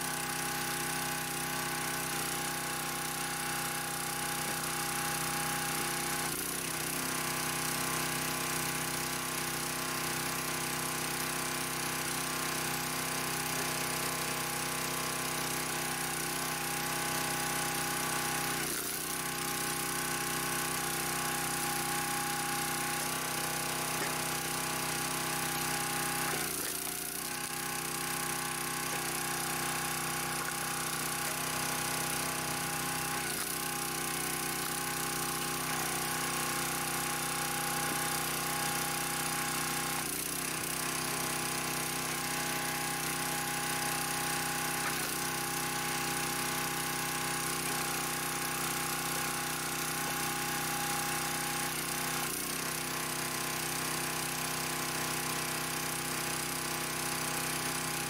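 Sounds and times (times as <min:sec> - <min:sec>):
log splitter engine running: 0:00.0 - 0:58.0.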